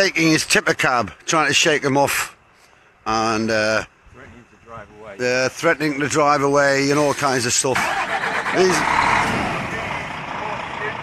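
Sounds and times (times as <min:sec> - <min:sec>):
diesel lorry engine running: 0:06.8 - 0:11.0.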